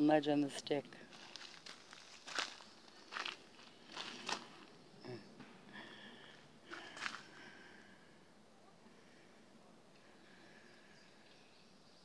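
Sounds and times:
footsteps on dry leaf litter: 0:01.1 - 0:04.7.

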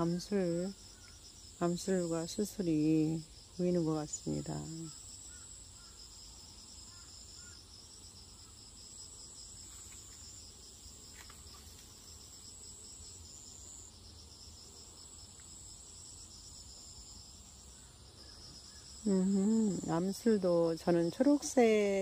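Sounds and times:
rapidly pulsing insect trill: 0:00.0 - 0:22.0
shrill insect trill: 0:00.0 - 0:22.0.

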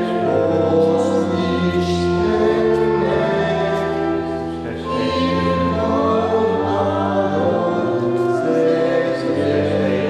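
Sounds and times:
choir singing a slow hymn: 0:00.0 - 0:10.0.

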